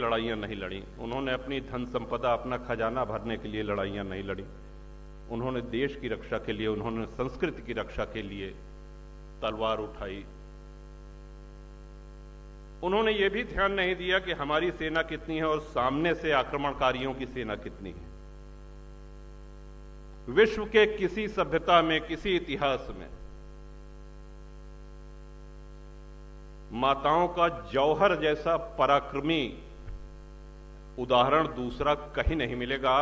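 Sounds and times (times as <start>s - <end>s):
man speaking: 0.0s - 4.6s, 5.3s - 8.6s, 9.4s - 10.4s, 12.8s - 18.1s, 20.3s - 23.3s, 26.7s - 29.8s, 31.0s - 33.0s
electrical mains hum: 0.0s - 33.0s.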